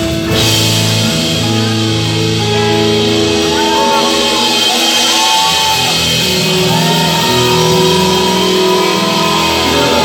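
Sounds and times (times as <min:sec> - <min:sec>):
loud live band music: 0:00.0 - 0:10.0.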